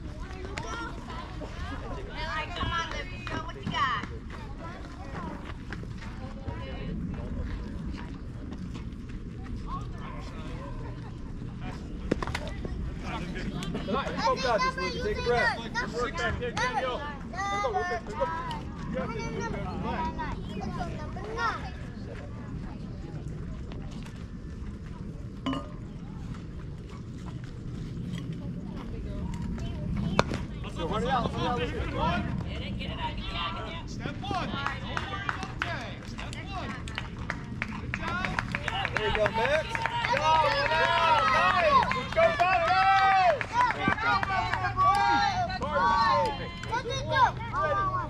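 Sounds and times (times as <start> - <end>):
voices shouting and cheering: 9.5 - 22.7, 29.1 - 48.0.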